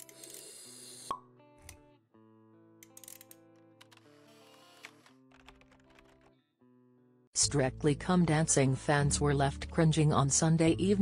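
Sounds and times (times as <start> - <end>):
soft background music: 0.0 - 6.2, 7.4 - 11.0.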